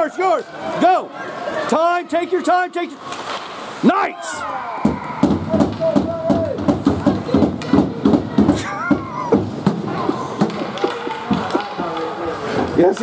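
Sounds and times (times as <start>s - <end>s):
gloved hands clapping: 10.4s - 12.1s.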